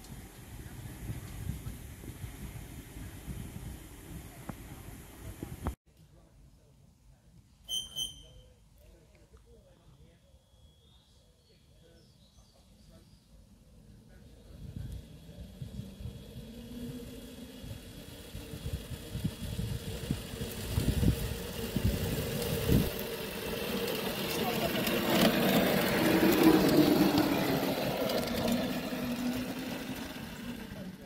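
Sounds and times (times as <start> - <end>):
miniature locomotive motor hum: 13.4 - 31.0
wheels clicking on track: 13.6 - 31.0.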